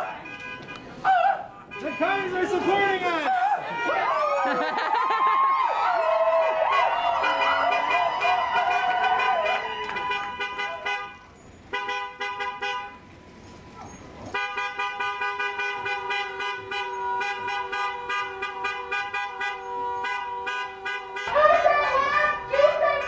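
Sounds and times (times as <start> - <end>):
vehicle horn blasts: 0.1 - 0.8, 1.6 - 2.9, 6.4 - 13.0, 14.4 - 21.6.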